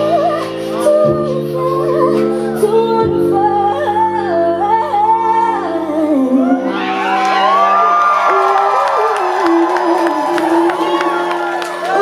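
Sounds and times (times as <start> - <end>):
woman singing live: 0.0 - 12.0
audience whooping and cheering: 6.4 - 12.0.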